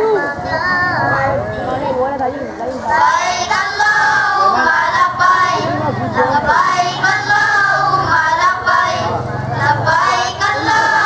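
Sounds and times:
children singing together: 2.9s - 11.0s.

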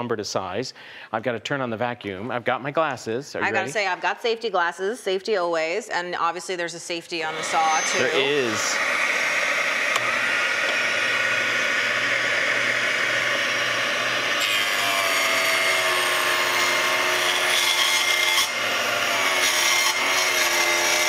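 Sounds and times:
dust extraction vacuum: 7.2s - 21.0s
table saw ripping a board: 7.3s - 21.0s.

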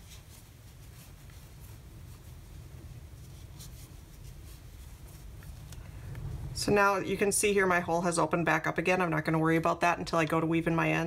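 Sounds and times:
yarn rustling: 0.0s - 9.8s
steady low hum: 0.0s - 11.0s.

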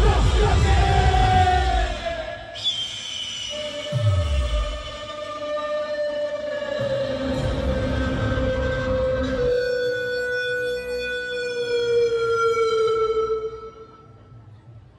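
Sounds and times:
band drums and bass: 0.0s - 2.0s.

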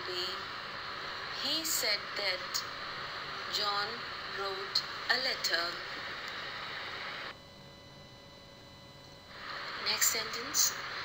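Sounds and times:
recording hiss: 0.0s - 7.4s, 9.2s - 11.0s
faint steady hum: 0.0s - 11.0s.

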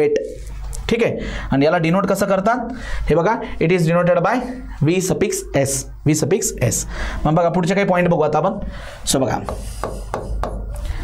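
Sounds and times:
stylus tapping on glass: 9.5s - 10.7s.

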